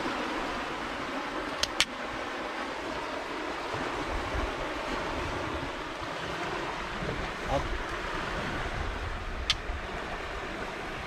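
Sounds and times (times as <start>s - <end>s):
canal water: 0.0s - 11.0s
sharp click: 1.6s - 1.9s
wind on microphone: 2.8s - 11.0s.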